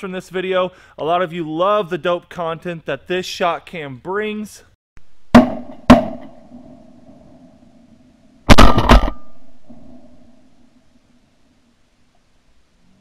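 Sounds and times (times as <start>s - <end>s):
shotgun blasts with echo: 5.3s - 6.8s, 8.5s - 10.2s.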